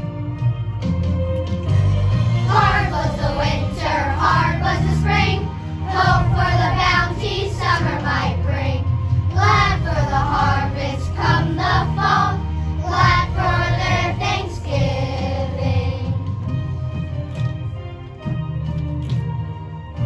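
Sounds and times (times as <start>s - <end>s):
instrumental accompaniment: 0.0s - 20.0s
children's choir singing: 2.4s - 16.4s.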